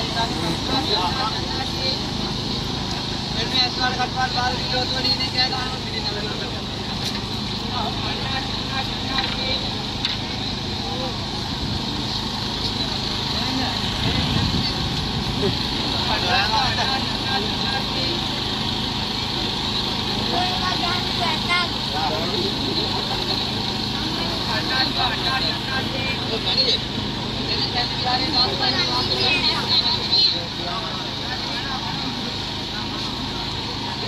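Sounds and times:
crowd voices: 0.0s - 34.0s
road traffic hum: 0.0s - 34.0s.

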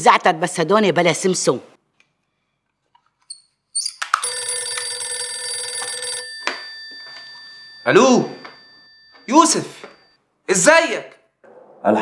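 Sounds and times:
telephone bell ringing: 4.2s - 10.2s.

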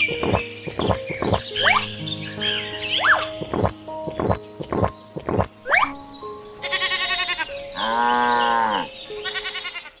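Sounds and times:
background music with held notes: 0.0s - 10.0s
quavering bleating: 6.6s - 10.0s.

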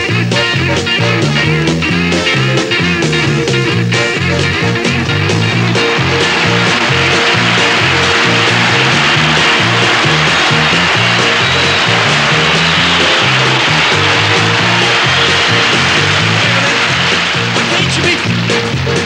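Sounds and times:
bass line: 0.0s - 19.0s
drums: 0.0s - 19.0s
electric guitar: 0.0s - 19.0s.

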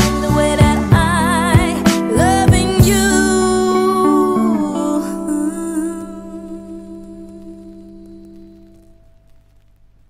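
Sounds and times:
held chord: 0.0s - 9.0s.

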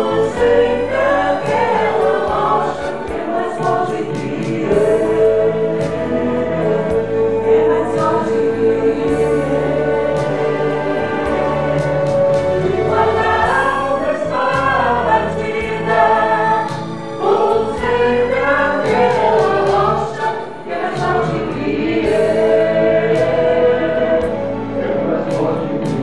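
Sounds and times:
choir singing gospel song: 0.0s - 26.0s
instrumental backing with bass line: 0.0s - 26.0s.

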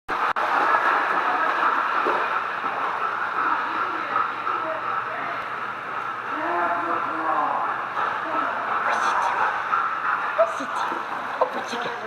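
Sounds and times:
water splashing around dog: 0.1s - 12.0s.

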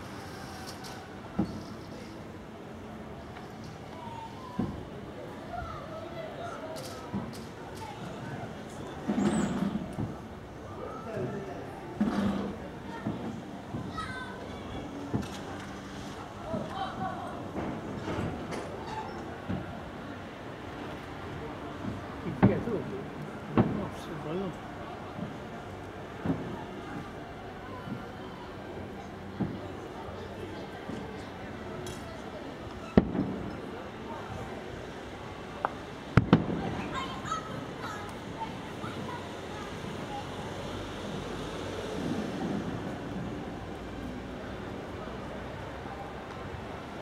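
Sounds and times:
rumble of fireworks display: 19.4s - 31.6s, 32.6s - 40.1s
fireworks exploding: 23.6s - 24.0s, 32.9s - 33.5s, 36.1s - 37.0s.

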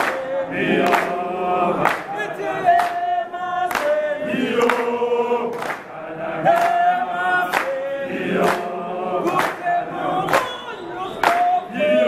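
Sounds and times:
choir singing: 0.0s - 12.0s
man singing into a microphone: 9.2s - 12.0s.

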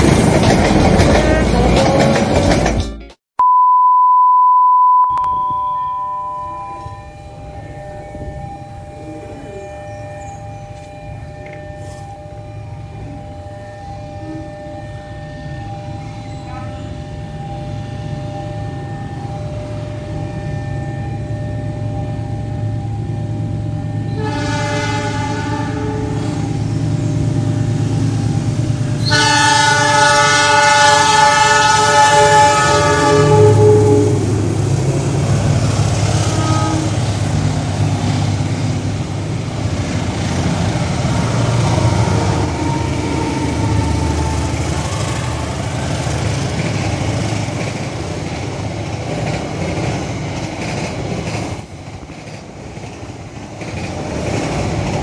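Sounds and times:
train coaches clattering on rails: 0.0s - 3.2s, 6.8s - 18.8s, 22.2s - 55.0s
locomotive air horn blasts: 24.1s - 26.5s, 29.0s - 34.5s, 36.1s - 37.1s, 41.0s - 46.2s.

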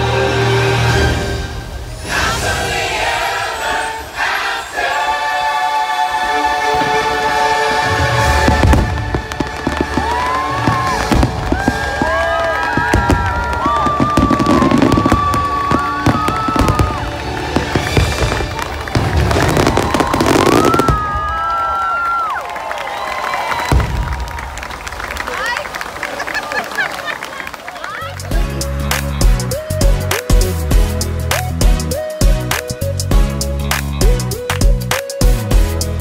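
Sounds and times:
fireworks bangs and booms: 7.9s - 21.7s, 23.5s - 24.7s
loud show music: 28.1s - 36.0s.

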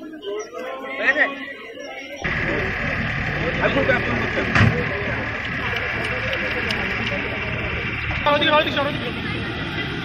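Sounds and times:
crowd chatter: 0.0s - 10.0s
engine running steadily: 2.2s - 10.0s.

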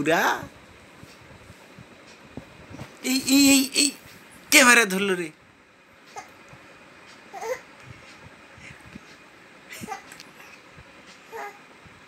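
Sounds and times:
faint room noise: 0.0s - 12.0s.

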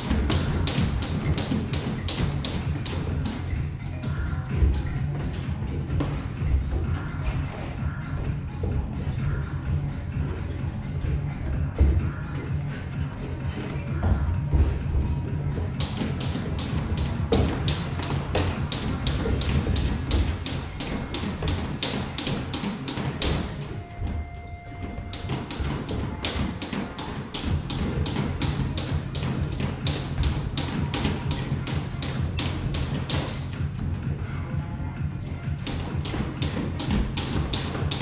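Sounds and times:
boxing gloves thudding: 0.0s - 3.4s, 11.3s - 23.6s, 35.7s - 38.0s
background music with bass line: 0.0s - 38.0s
footwork on ring canvas: 0.0s - 38.0s.

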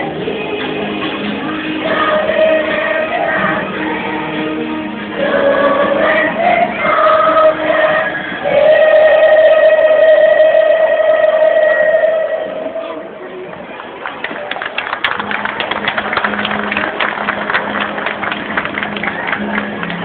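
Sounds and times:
choir singing: 0.0s - 13.2s
crowd applauding: 13.4s - 20.0s.

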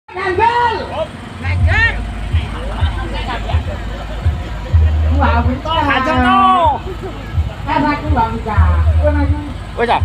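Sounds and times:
people calling out loudly: 0.1s - 9.7s
low rumble: 0.8s - 10.0s.

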